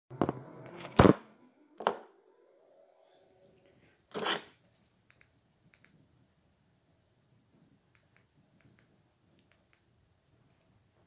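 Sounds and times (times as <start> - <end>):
faint clicks: 7.9 - 9.9.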